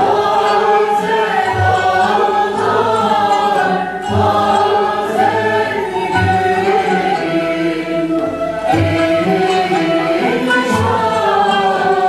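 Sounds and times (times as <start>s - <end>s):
instrumental ensemble: 0.0s - 12.0s
mixed choir singing: 0.0s - 12.0s.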